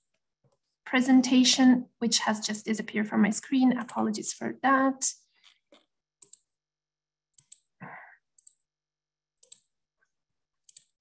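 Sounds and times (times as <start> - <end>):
computer mouse clicks: 3.8 - 4.0, 5.4 - 6.5, 7.3 - 7.7, 8.4 - 8.7, 9.4 - 9.8, 10.6 - 11.0.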